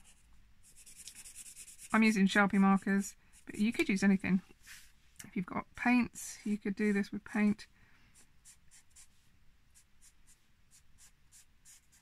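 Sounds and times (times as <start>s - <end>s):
marker scratching on card: 0.0s - 2.3s, 9.8s - 12.0s.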